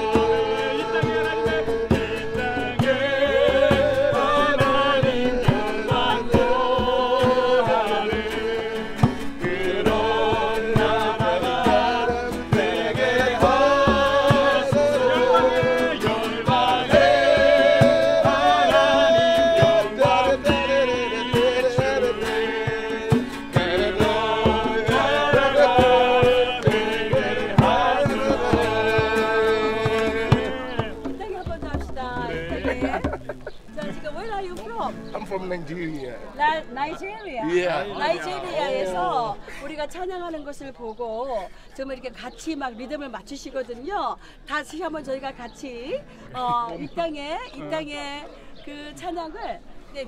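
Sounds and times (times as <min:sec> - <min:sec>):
group singing a worship song: 0:00.0 - 0:33.2, 0:36.7 - 0:39.8
strummed acoustic guitars: 0:00.0 - 0:42.4
djembe struck by hand: 0:22.7 - 0:33.9.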